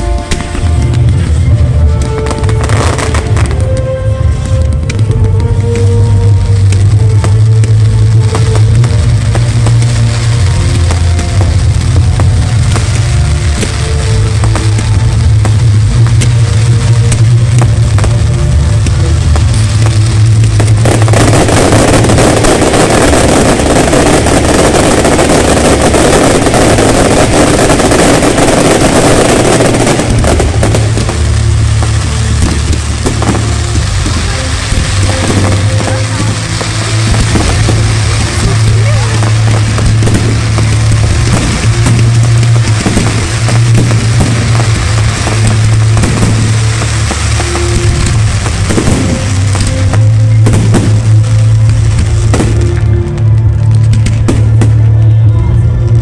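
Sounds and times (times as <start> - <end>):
fireworks banging and crackling: 0.0 - 56.0.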